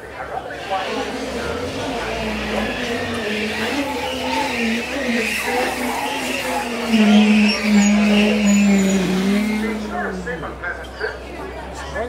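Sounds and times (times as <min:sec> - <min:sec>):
truck engine running: 0:00.6 - 0:10.7.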